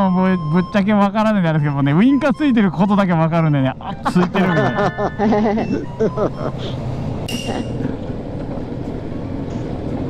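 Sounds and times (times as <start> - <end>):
motorcycle engine humming: 0.0 - 10.0.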